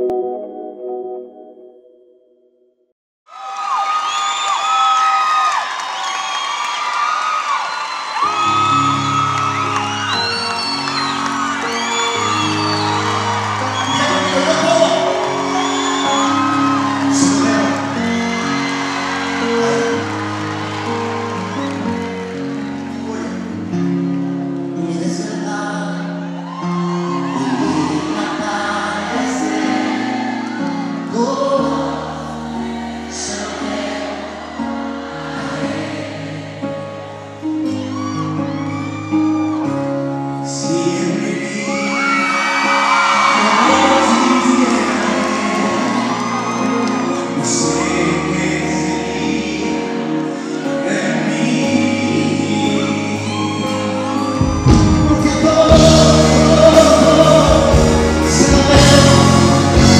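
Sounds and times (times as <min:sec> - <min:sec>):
sustained keyboard chords: 0:00.0 - 0:02.6
audience whooping: 0:03.3 - 0:59.9
man singing: 0:13.7 - 0:18.4, 0:19.4 - 0:20.4, 0:23.0 - 0:24.0, 0:24.7 - 0:26.3, 0:27.3 - 0:29.8, 0:31.0 - 0:32.1, 0:33.1 - 0:33.8, 0:40.4 - 0:59.9.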